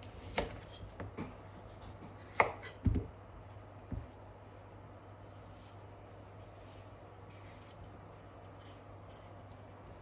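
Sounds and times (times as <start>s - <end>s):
knife chopping on wooden board: 0.0s - 3.1s.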